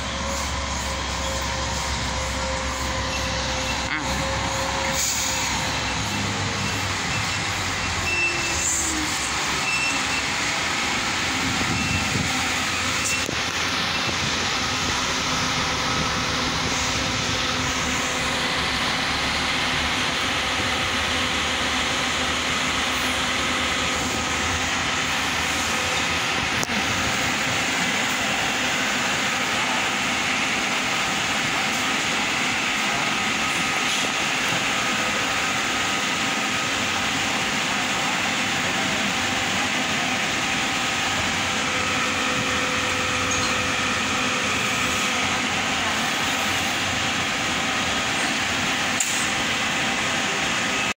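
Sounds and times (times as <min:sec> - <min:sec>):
coach engine idling: 0:00.0 - 0:50.9.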